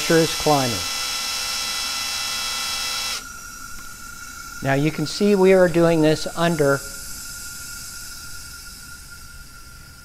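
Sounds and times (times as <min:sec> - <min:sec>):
cordless drill running: 0:00.0 - 0:03.3
gas hissing through regulator: 0:00.0 - 0:10.0.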